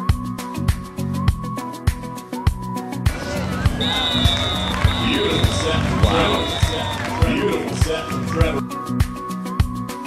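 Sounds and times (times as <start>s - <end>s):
live match sound: 3.1s - 8.6s
voices: 3.1s - 8.6s.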